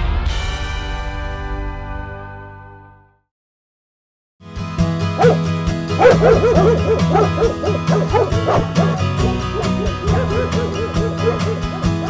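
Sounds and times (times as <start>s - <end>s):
dog barks and yips: 5.2s - 5.4s, 6.0s - 12.0s.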